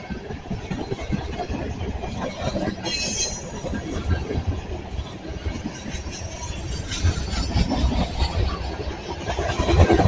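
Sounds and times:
steel wheels rumbling on rail: 0.0s - 10.0s
train car squeal: 2.7s - 3.8s.

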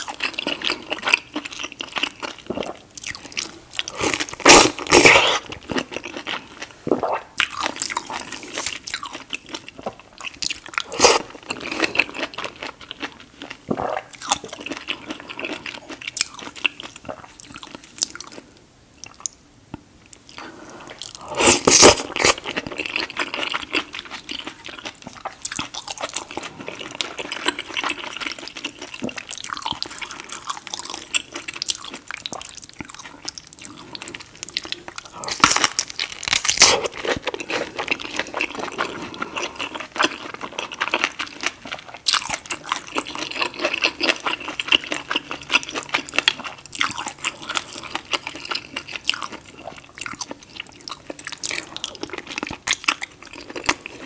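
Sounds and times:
biting and chewing: 21.4s - 54.0s.

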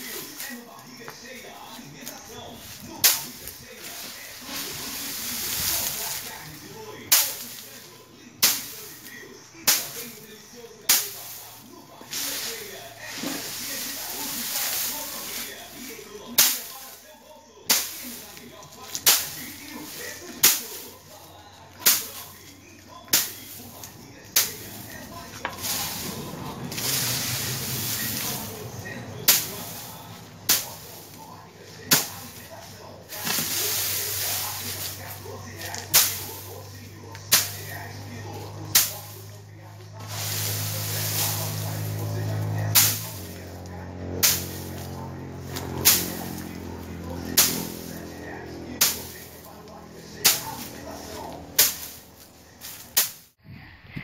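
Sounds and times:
wooden pole whacking bean plants: 0.0s - 17.0s, 17.6s - 53.4s
dry stalks rustling: 0.0s - 53.4s.

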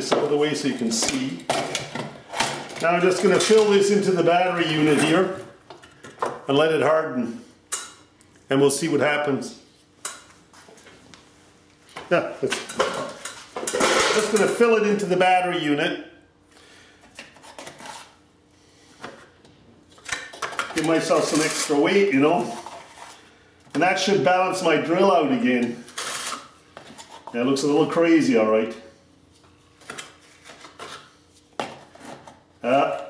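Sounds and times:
putty knife scraping grout tub: 20.8s - 23.2s.

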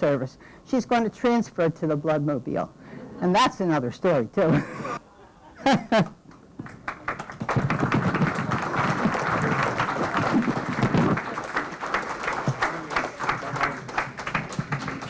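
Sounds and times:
audience clapping: 6.3s - 15.0s.

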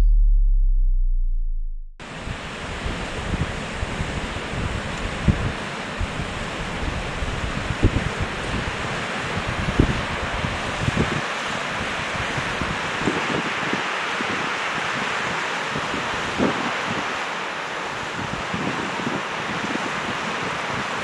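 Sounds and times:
wind buffeting microphone: 2.0s - 17.2s, 17.9s - 21.0s
water rushing over rocks: 2.0s - 21.0s.

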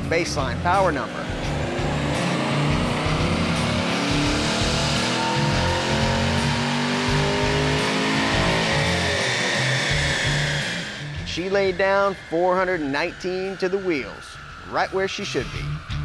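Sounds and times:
car engine revving: 0.0s - 16.0s
music: 0.0s - 16.0s.

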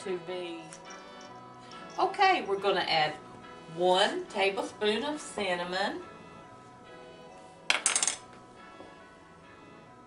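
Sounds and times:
soft background music: 0.0s - 10.0s
utensils clinking against a dish: 0.6s - 2.8s.

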